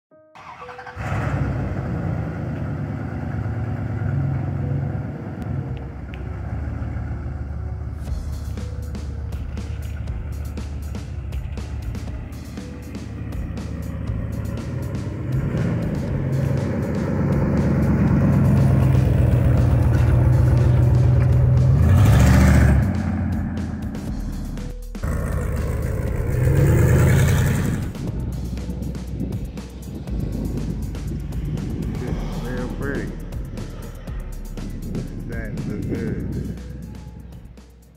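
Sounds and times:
pickup truck engine driving past: 0.4 - 37.9
music playing: 4.1 - 37.9.

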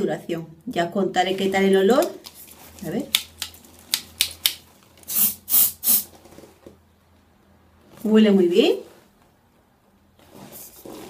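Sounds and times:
aerosol can spraying: 5.1 - 6.1.

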